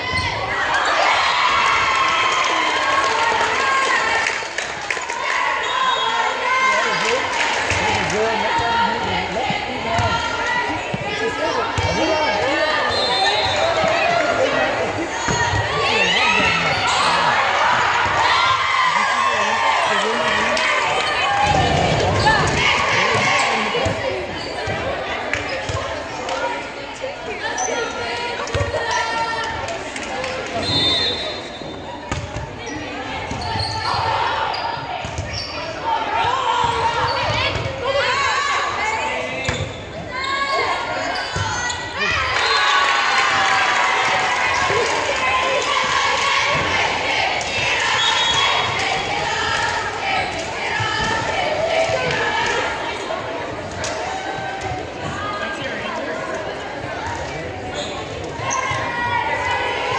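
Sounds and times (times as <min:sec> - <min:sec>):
spectators chattering: 0:00.0 - 0:59.9
players calling: 0:00.1 - 0:26.3.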